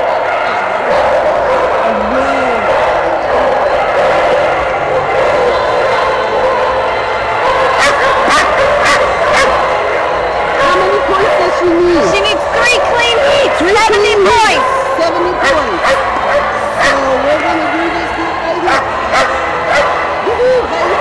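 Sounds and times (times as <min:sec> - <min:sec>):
many dogs barking: 0:00.0 - 0:21.0
people's voices: 0:00.0 - 0:21.0.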